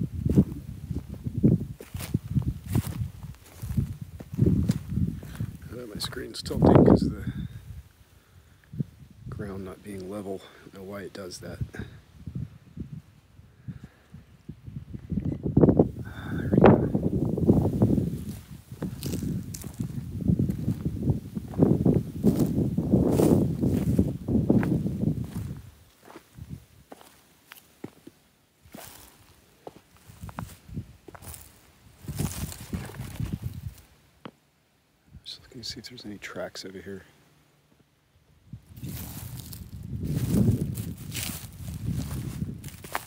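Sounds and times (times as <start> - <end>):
footsteps on dry grass and rocks: 0.0 - 7.0, 16.6 - 34.4, 38.6 - 43.0.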